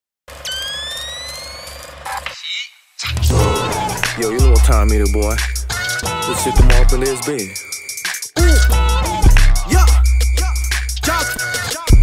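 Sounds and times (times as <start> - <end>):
high rising whine: 3.0 - 5.8.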